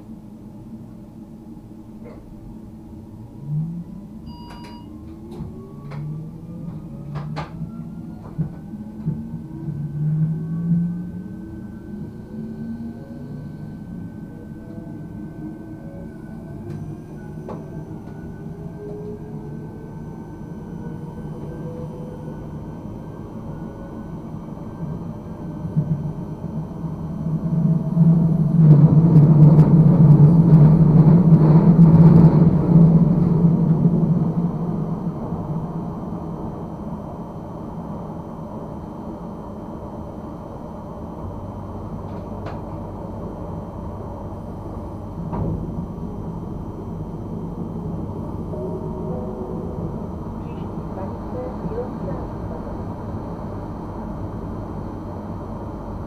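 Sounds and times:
electric train traction whine: 0.0 - 56.0
train running rumble: 0.0 - 56.0.

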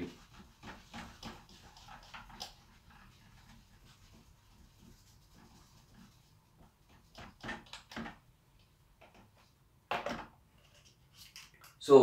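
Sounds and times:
eraser rubbing on whiteboard: 0.0 - 7.8.

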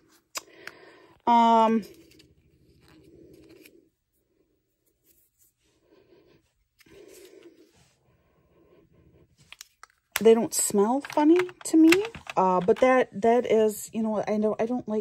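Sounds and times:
plastic containers clicking: 10.2 - 13.0.

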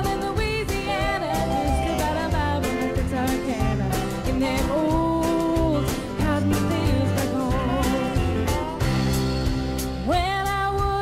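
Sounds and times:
woman singing country song: 0.0 - 8.9, 9.9 - 11.0
live band with guitar and bass: 0.0 - 11.0.

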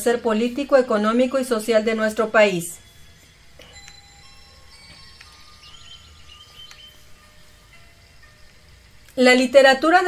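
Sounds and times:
soft chime-like music notes: 1.1 - 10.0.

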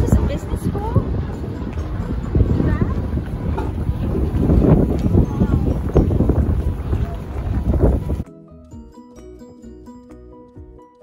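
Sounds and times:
wind buffeting microphone: 0.0 - 8.2.

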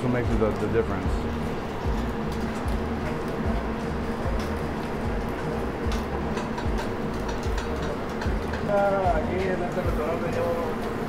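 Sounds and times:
background music: 0.0 - 11.0
kitchen machine hum: 0.0 - 11.0.

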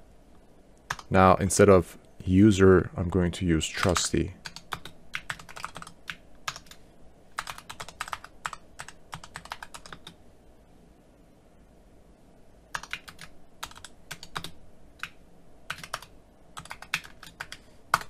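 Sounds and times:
computer keyboard typing: 0.9 - 1.2, 3.8 - 10.2, 12.7 - 18.0.

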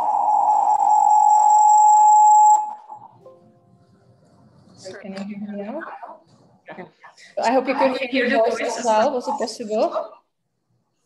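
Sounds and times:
audio feedback tone: 0.0 - 4.1.

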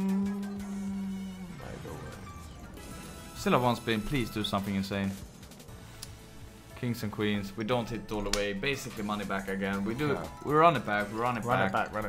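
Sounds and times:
man humming low: 0.0 - 1.6
slot game music: 0.0 - 12.0.

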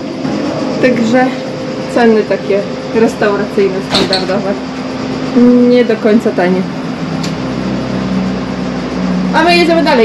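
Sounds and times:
mechanical hum with hiss: 0.0 - 10.0.

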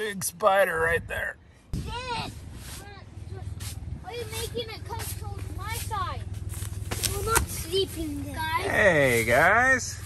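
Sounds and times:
children's high-pitched voices: 1.8 - 6.3, 7.0 - 8.7.

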